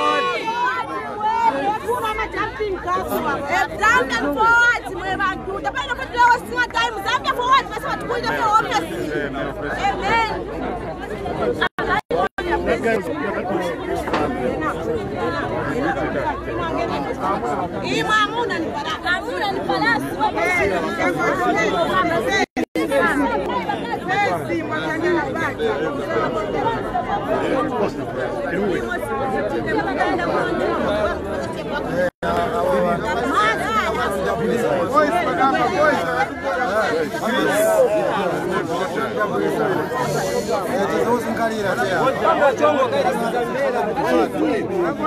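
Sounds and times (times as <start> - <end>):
crowd of people talking: 0.0 - 45.0.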